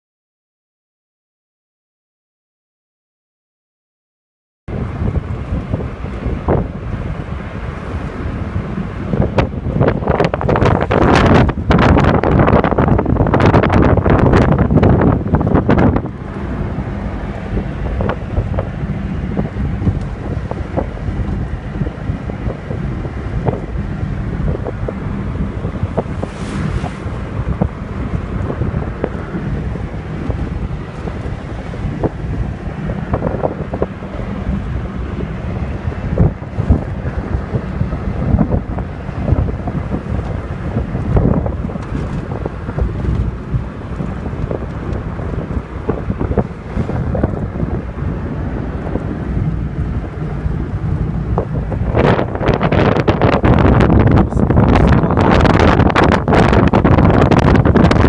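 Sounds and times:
road and engine noise: 0:04.7 - 0:58.0
wind buffeting microphone: 0:04.7 - 0:58.0.

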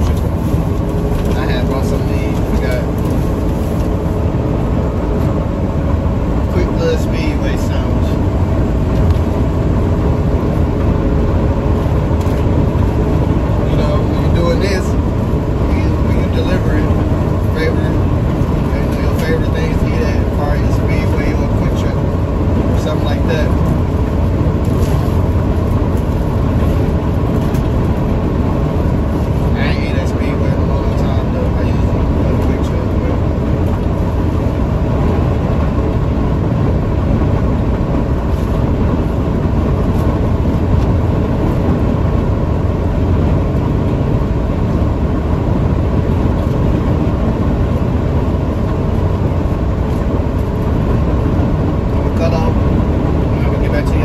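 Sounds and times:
truck cab road and engine noise: 0:00.0 - 0:54.0.

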